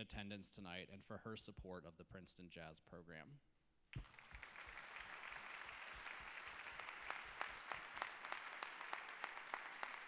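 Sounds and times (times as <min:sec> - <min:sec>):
sharp individual claps: 0:03.9 - 0:10.0
audience applauding: 0:04.0 - 0:10.0.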